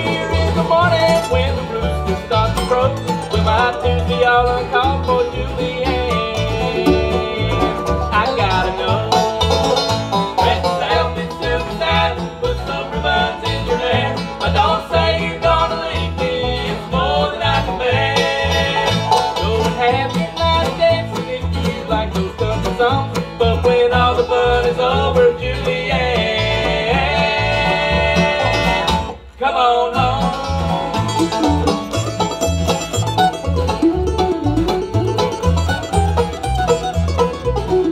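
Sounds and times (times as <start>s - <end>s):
plucked upright bass: 0.0s - 29.3s, 29.9s - 37.9s
bluegrass band playing: 0.0s - 37.9s.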